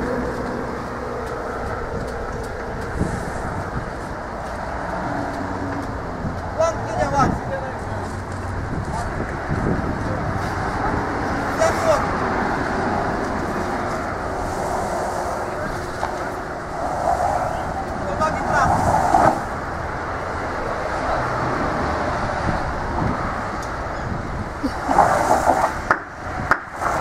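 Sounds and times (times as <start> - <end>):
road traffic noise: 0.0 - 27.0.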